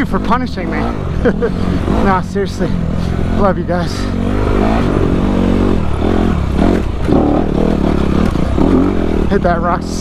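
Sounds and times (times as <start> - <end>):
dirt bike engine revving: 0.0 - 10.0.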